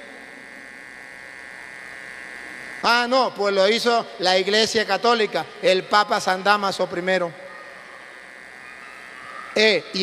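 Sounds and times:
electrical hum with faint buzz: 0.0 - 10.0
man talking: 2.8 - 7.3, 9.6 - 10.0.

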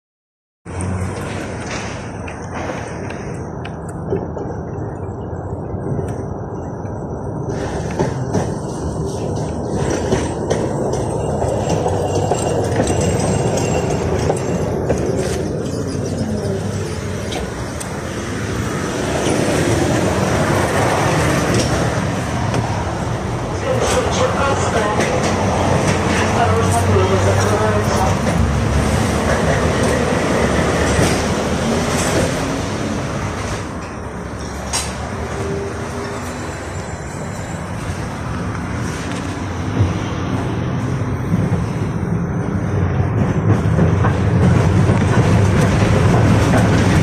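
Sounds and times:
street traffic: 0.6 - 47.0
tram wheels rumbling on rails: 0.7 - 47.0.

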